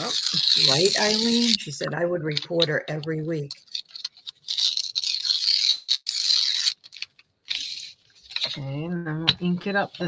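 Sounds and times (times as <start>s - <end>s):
paper tearing: 0.0s - 8.8s.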